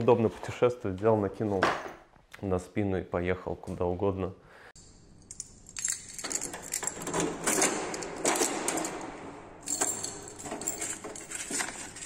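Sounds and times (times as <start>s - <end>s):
metal mailbox door clicks and rattles: 5.9s - 12.0s.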